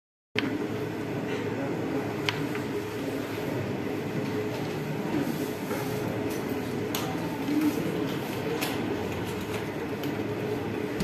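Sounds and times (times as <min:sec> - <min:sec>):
constant room hum: 0:00.4 - 0:11.0.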